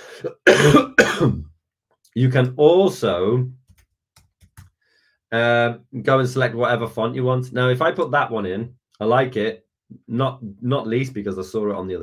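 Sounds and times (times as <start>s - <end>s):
man coughing: 0.0s - 1.5s.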